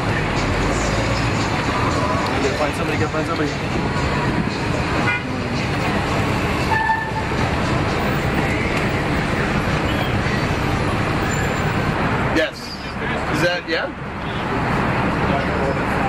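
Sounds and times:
traffic noise: 0.0s - 16.0s.

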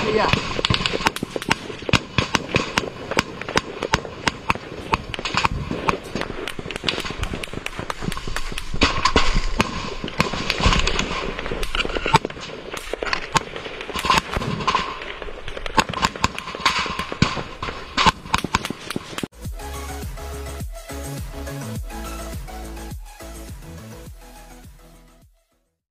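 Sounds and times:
rifle gunfire: 0.0s - 19.2s
electronic music: 19.3s - 25.6s.

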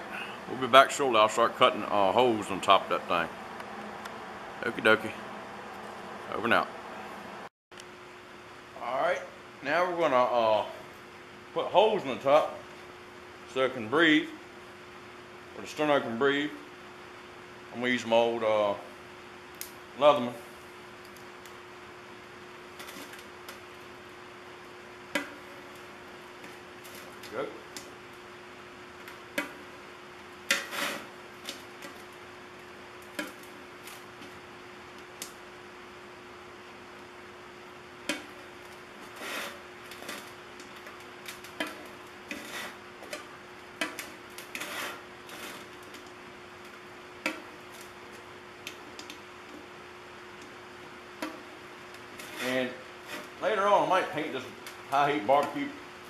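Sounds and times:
steady low hum: 0.0s - 56.0s
metallic clicks and scrapes: 41.3s - 46.1s.

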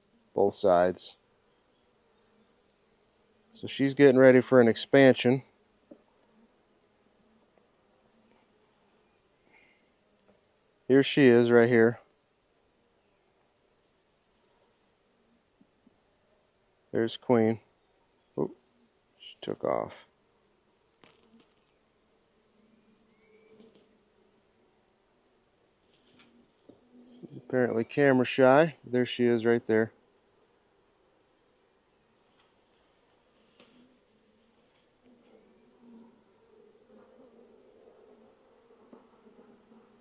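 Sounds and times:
honeybees humming: 0.0s - 40.0s
bees buzzing: 29.0s - 40.0s.

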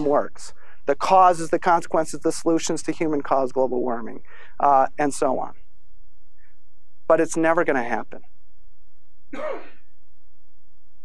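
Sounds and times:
person clearing throat: 9.3s - 9.9s.

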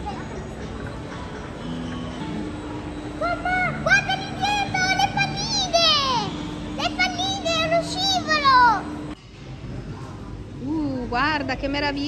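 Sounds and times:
electronic carousel tune: 0.0s - 9.2s.

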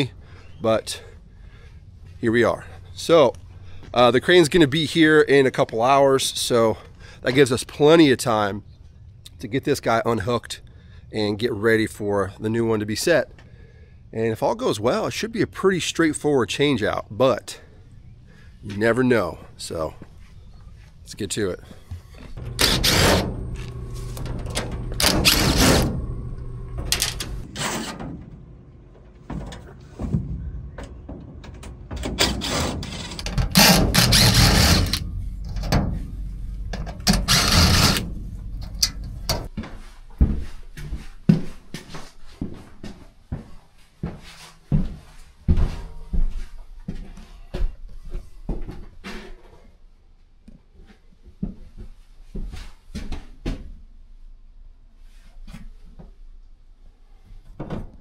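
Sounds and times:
loud bursts of noise: 22.4s - 27.6s, 33.2s - 39.5s.

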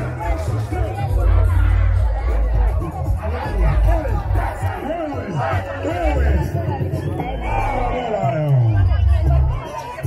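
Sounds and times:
crowd voices overlapping: 0.0s - 10.0s
deep bass loudspeaker music: 0.0s - 10.0s.

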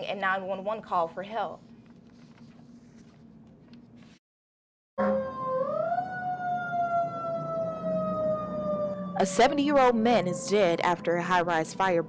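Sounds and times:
siren wailing: 5.0s - 12.0s.

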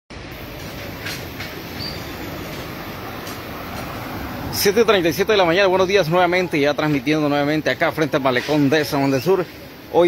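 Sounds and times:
street ambience: 0.1s - 10.0s
car driving by: 1.2s - 7.1s.

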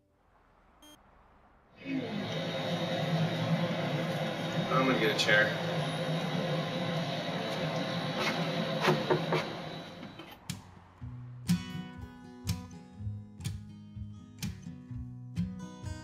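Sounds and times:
noisy outdoor background: 0.0s - 13.7s.

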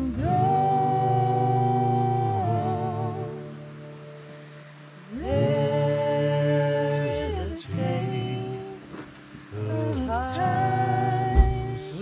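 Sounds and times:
voices singing together: 0.0s - 3.8s, 5.0s - 12.0s
acoustic guitar strumming: 0.0s - 12.0s.

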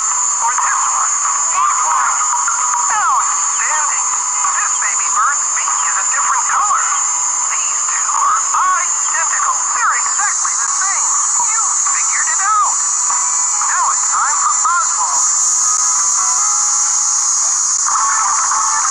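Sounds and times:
steady high whine: 0.0s - 18.9s
narrator speaking: 0.4s - 15.3s.

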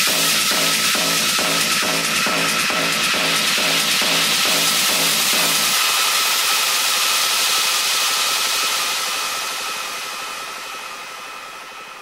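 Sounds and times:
techno kick drum: 0.0s - 11.2s.

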